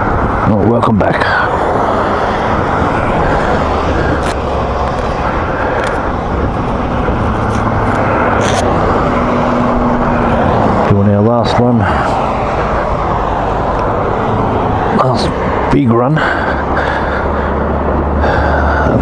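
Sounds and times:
low engine hum: 0.0 - 19.0
roadside rumble of motor vehicles: 0.0 - 19.0.

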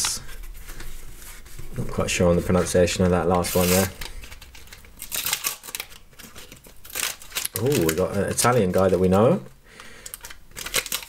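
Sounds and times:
paper wrapper tearing and crinkling: 2.5 - 9.4, 10.0 - 11.0.

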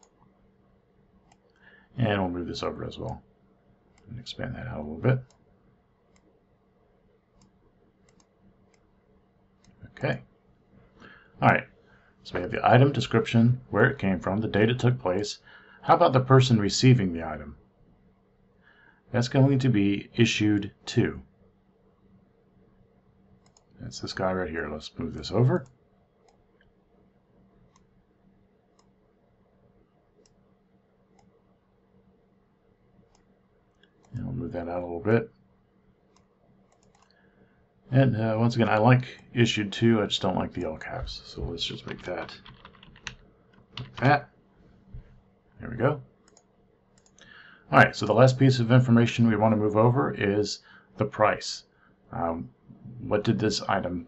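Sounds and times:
computer mouse clicks: 0.0 - 0.3, 1.2 - 1.7, 6.1 - 6.3, 7.4 - 8.9, 23.4 - 23.8, 25.6 - 26.8, 27.6 - 28.0, 28.7 - 29.0, 30.2 - 30.4, 31.1 - 31.4, 33.1 - 34.2, 36.1 - 37.3, 41.8 - 44.1, 46.2 - 47.3
faint steady hum: 0.0 - 54.0.

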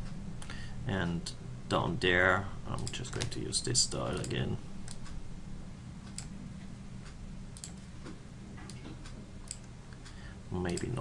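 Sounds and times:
low electrical hum: 0.0 - 11.0
computer mouse clicks: 7.0 - 7.8, 8.7 - 10.1.

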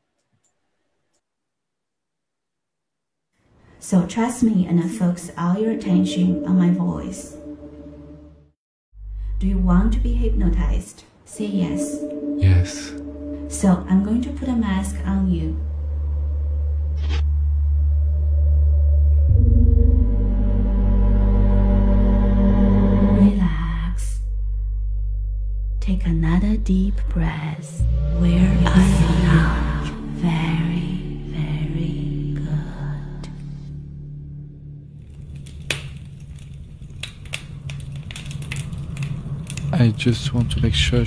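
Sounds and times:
deep ambient drone: 4.9 - 41.0
low steady hum: 9.0 - 21.9, 23.0 - 41.0.

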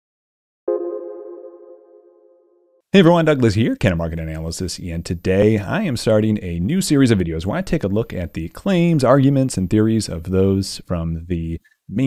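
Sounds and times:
synthesized ringing tone: 0.7 - 2.8.

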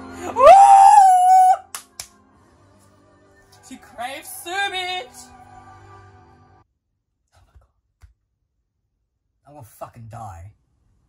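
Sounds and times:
man whooping: 0.2 - 1.7.

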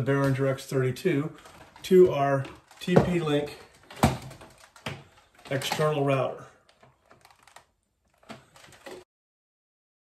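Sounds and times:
plastic router and cable clicks: 1.4 - 9.0.

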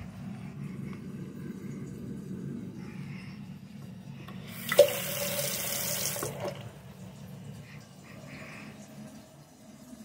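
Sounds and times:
faucet running into sink: 4.5 - 6.8.

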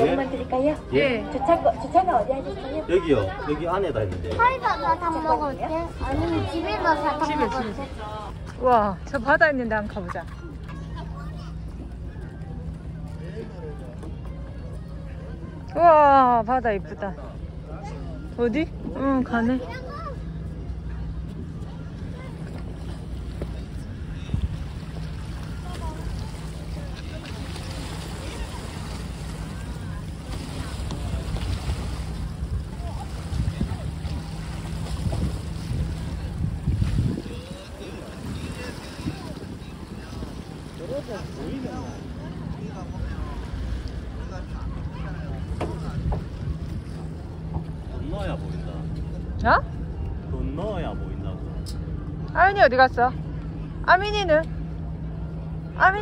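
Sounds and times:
steady low hum: 4.1 - 56.0
waves lapping against rocks: 22.2 - 47.4
wind on microphone: 30.2 - 47.9.

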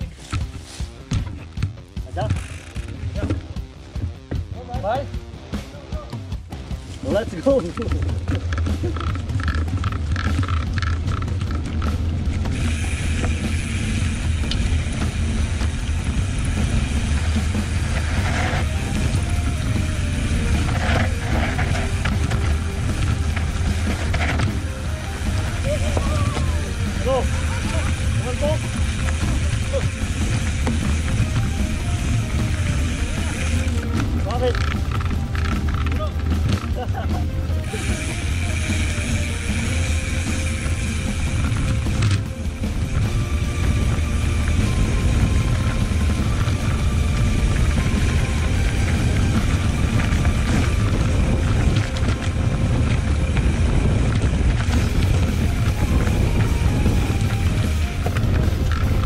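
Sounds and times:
bike trail rumble: 0.0 - 59.0
music: 0.0 - 59.0
wind buffeting: 7.1 - 59.0
voices: 17.4 - 40.6.

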